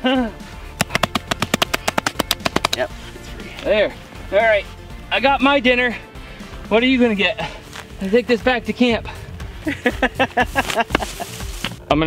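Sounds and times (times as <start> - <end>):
plant roots cracking and snapping: 0.8 - 2.8.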